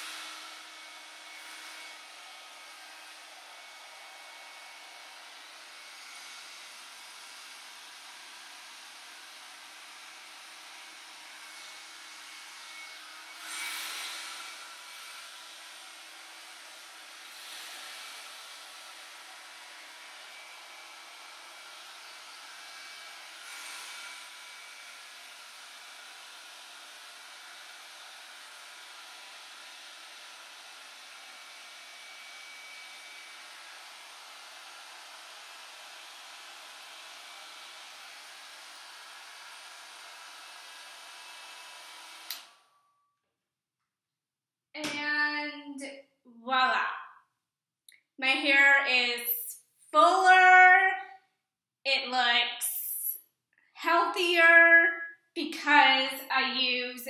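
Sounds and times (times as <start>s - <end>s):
hair dryer blowing air: 0.0s - 42.6s.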